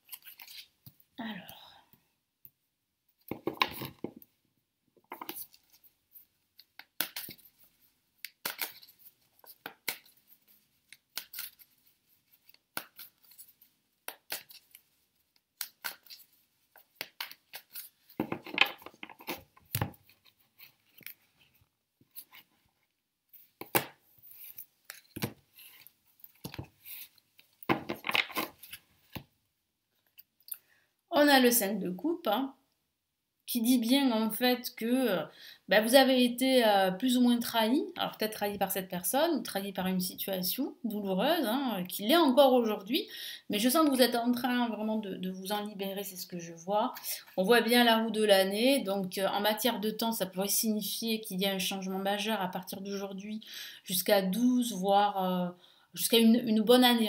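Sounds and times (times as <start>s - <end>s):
cards shuffling on table: 15.6s - 22.5s, 23.3s - 29.3s.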